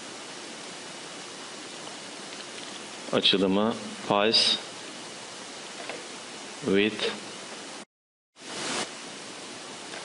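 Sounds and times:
steady recording hiss: 0.0 - 10.0.

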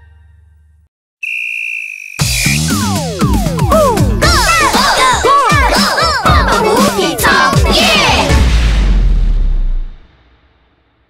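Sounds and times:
steady high whistle blast: 1.2 - 3.8
children's song: 3.7 - 8.5.

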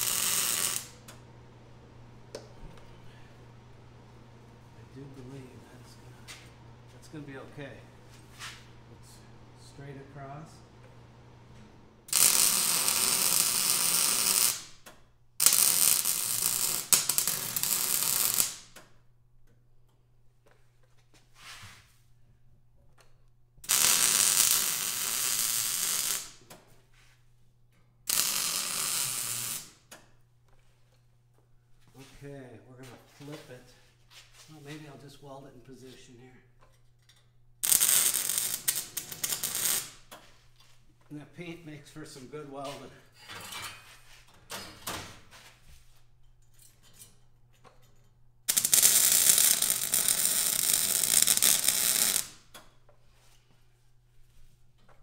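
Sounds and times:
welder crackling sizzle: 0.0 - 1.1, 12.1 - 14.7, 15.4 - 18.7, 23.7 - 26.4, 28.1 - 29.8, 37.6 - 40.0, 48.5 - 52.4.

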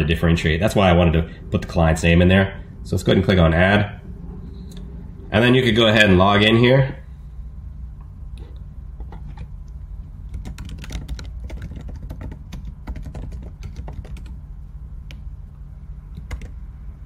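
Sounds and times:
steady low hum: 0.0 - 17.0
typing on computer keyboard: 10.3 - 14.4, 16.2 - 16.6.

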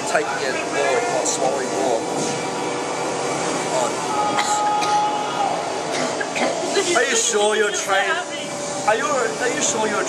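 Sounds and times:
loud steady background noise: 0.0 - 10.0.

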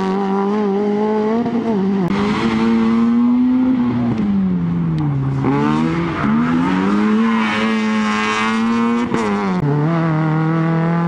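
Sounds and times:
rally car engine passing: 0.0 - 11.0.

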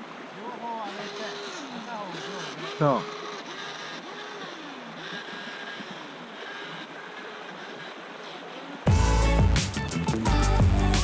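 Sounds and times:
small electric motor whining: 0.0 - 9.6
stream rushing: 0.0 - 11.0.

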